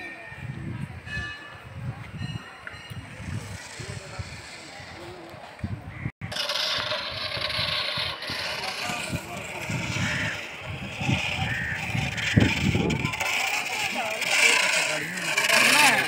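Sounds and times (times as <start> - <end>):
people's voices: 0.0 - 5.9, 8.0 - 16.0.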